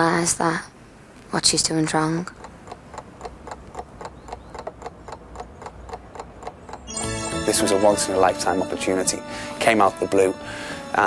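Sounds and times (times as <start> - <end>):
steady clock-like ticking: 2.2 - 6.9.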